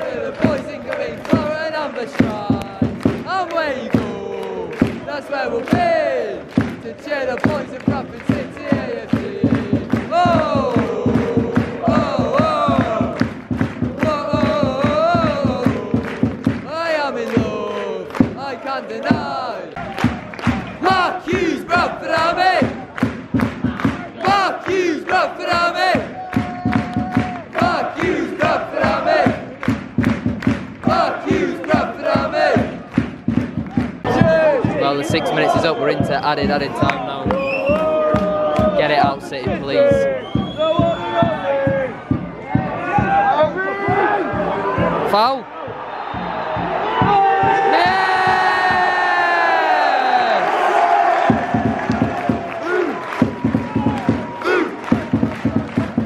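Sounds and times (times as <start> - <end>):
crowd singing a chant: 0.0 - 19.8, 20.5 - 22.9, 23.6 - 29.8, 30.7 - 33.0, 54.4 - 55.1
hand-clapping: 0.0 - 34.4, 35.2 - 40.6, 50.4 - 56.0.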